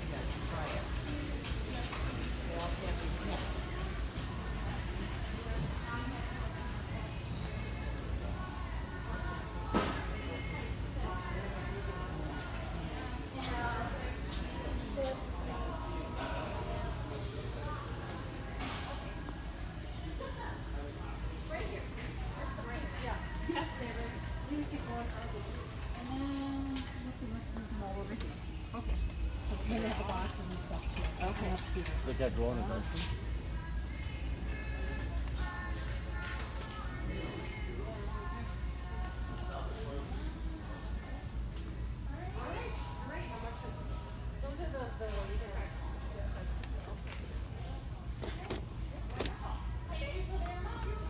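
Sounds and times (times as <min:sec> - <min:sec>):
low store hum: 0:00.0 - 0:51.0.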